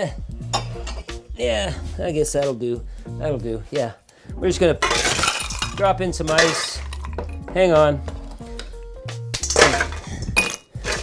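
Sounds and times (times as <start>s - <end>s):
soft background music: 0.0s - 11.0s
ice cubes clinking in glass: 4.8s - 7.2s, 9.4s - 11.0s.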